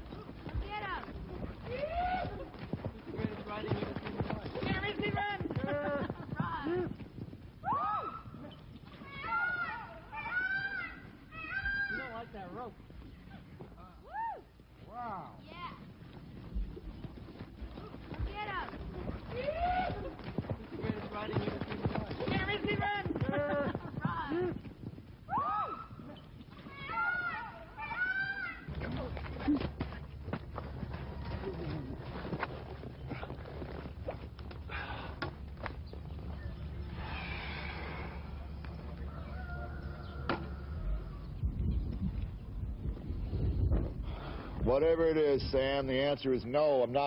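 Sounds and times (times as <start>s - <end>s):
low rumble: 34.3s - 45.0s.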